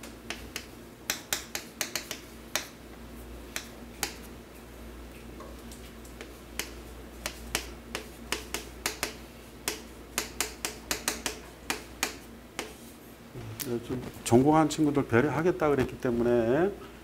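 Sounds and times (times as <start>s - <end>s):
low electrical hum: 0.0s - 17.0s
chalk tapping on a chalkboard: 0.2s - 2.8s, 3.5s - 4.3s, 6.2s - 12.9s.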